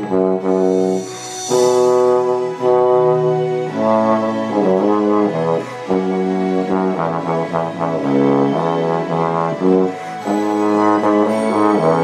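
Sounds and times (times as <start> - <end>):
low brass instrument melody: 0.0 - 12.0.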